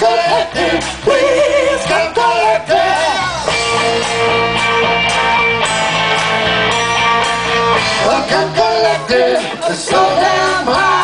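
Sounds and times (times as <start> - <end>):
live rock band: 0.0 - 11.0
person singing: 7.8 - 11.0.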